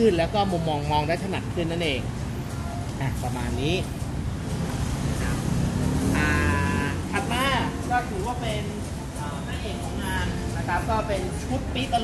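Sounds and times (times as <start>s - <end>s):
passing vehicles rumbling: 0.0s - 12.0s.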